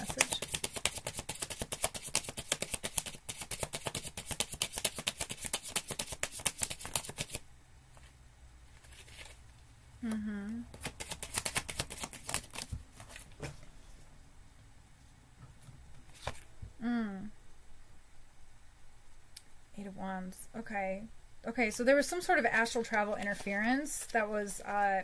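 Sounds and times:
cards being shuffled: 0:00.0 - 0:09.4, 0:10.7 - 0:13.6, 0:16.1 - 0:16.5, 0:22.8 - 0:24.3.

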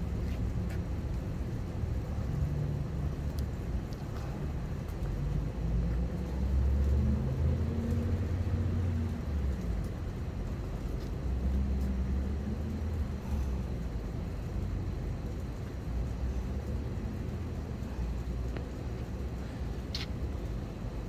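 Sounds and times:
passing vehicles engine rumble: 0:00.0 - 0:21.0.

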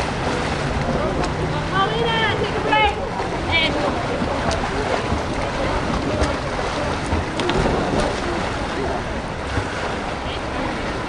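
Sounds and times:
swimmers splashing in pool: 0:00.0 - 0:11.0.

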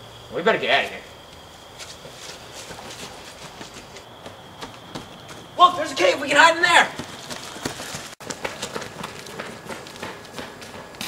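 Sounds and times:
running footsteps on concrete: 0:01.3 - 0:11.0.

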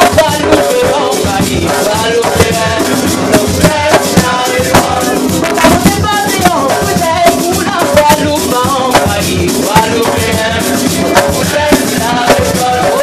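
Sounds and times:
hand drums: 0:00.0 - 0:13.0
shaker rattle: 0:00.0 - 0:13.0
woman singing: 0:03.6 - 0:10.4.

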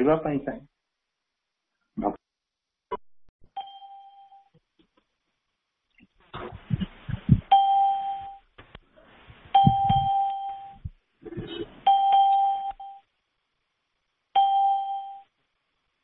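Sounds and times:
muffled knocking and rustling: 0:09.3 - 0:10.2.

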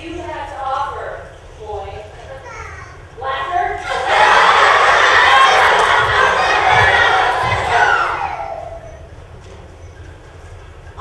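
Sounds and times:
crowd cheering and shouting: 0:03.8 - 0:09.1.

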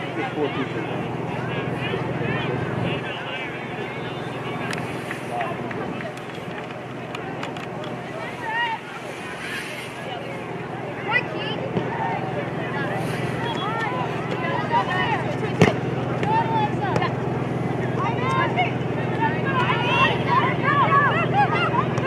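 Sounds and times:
players shouting and calling: 0:00.0 - 0:22.0
steady low hum: 0:00.0 - 0:22.0.

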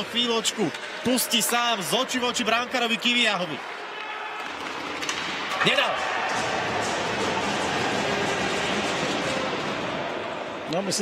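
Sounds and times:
ice hockey arena ambience: 0:00.0 - 0:11.0.

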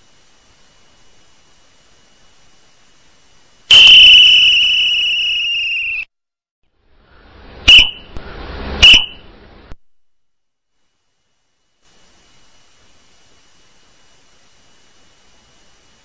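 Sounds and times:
whistle blasts: 0:03.7 - 0:06.1, 0:07.7 - 0:08.2, 0:08.8 - 0:09.3.

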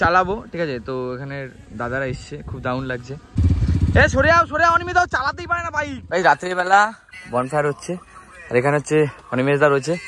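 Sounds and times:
men talking: 0:00.0 - 0:10.0
vehicle engine running: 0:03.4 - 0:06.2.

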